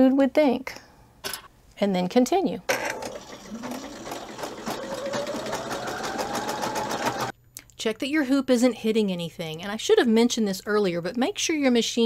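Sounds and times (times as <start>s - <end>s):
embroidery machine stitching: 2.9s - 7.3s
motor whine: 3.2s - 7.3s.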